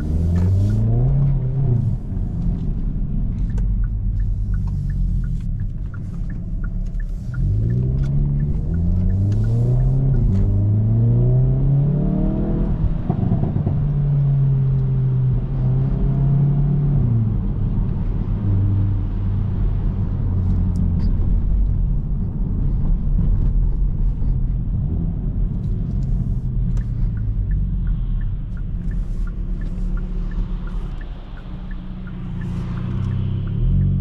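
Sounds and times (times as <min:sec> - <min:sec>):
car engine accelerating: 0:00.0 - 0:34.0.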